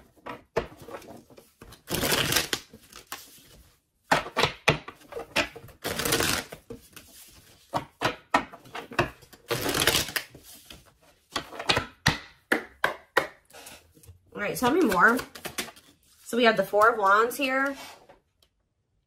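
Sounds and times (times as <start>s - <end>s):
cards being shuffled: 0.7s - 3.7s, 5.0s - 7.8s, 9.2s - 10.9s, 14.6s - 16.2s.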